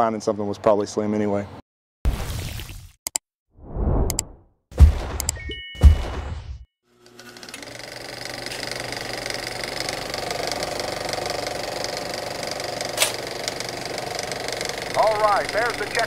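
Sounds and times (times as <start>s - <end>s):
sharp click: 4.0s - 4.3s
race car engine at high speed: 14.6s - 16.0s.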